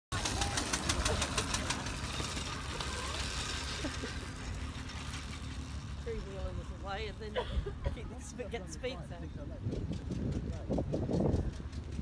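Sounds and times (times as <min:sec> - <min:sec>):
single-cylinder engine chugging: 0:00.1 - 0:12.0.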